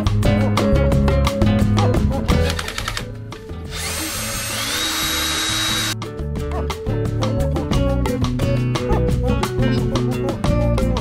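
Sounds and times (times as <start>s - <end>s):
cordless drill motor whine: 3.7s - 6.0s.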